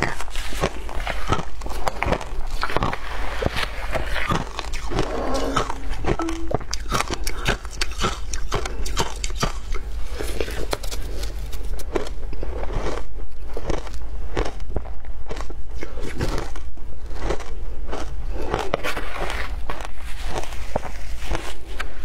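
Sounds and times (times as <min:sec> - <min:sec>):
crunching shaved ice: 0:06.9 - 0:21.8.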